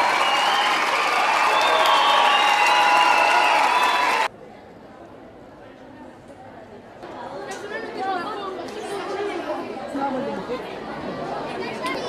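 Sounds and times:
children chattering: 7.0s - 12.0s.

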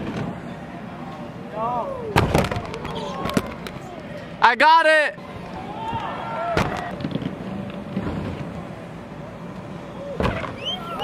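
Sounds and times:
heavy scooter crash impact: 2.2s - 3.5s.

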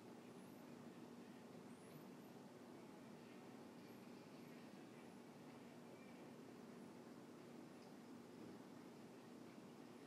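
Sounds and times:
faint background hiss: 0.0s - 10.0s.

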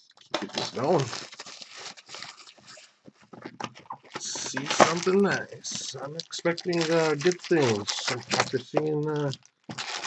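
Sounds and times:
plastic wrap crinkling: 0.0s - 10.0s.

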